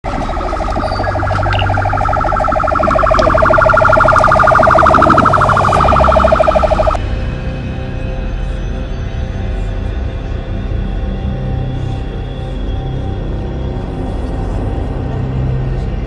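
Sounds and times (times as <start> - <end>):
electronic police siren: 0.0 - 7.0
music: 0.6 - 16.0.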